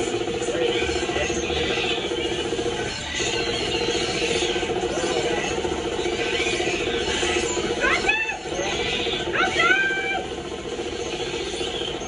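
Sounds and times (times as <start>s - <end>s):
game machine mechanical rattle: 0.0s - 12.0s.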